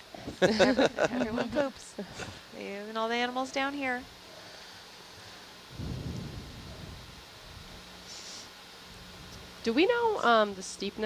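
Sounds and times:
background hiss: 0.0 - 11.0
faint low hum: 0.0 - 11.0
low rumble: 5.7 - 7.8.

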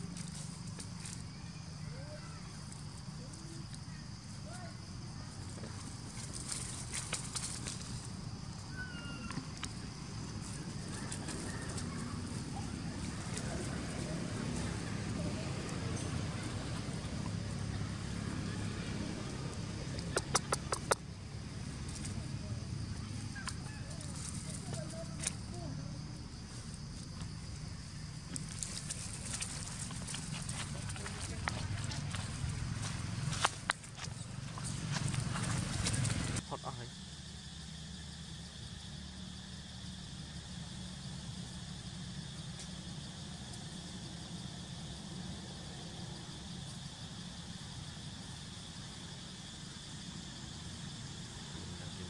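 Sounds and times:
rustling in grass and leaves: 0.0 - 20.4, 21.0 - 36.4.

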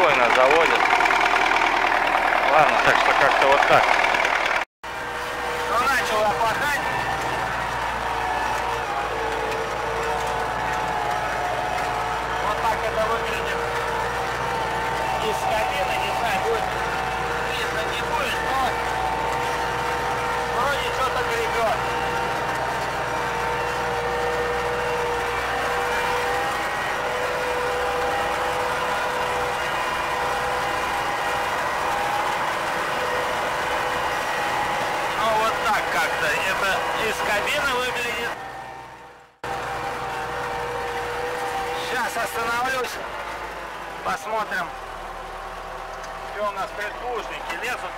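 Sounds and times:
tractor diesel engine under load: 0.0 - 47.9.

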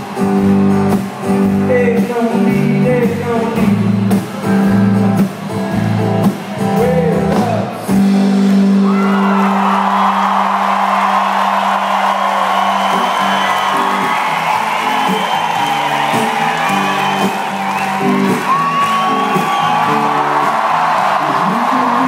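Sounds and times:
crowd whooping and cheering: 0.0 - 1.5, 8.5 - 22.0
live band music: 0.0 - 9.3, 12.7 - 22.0.

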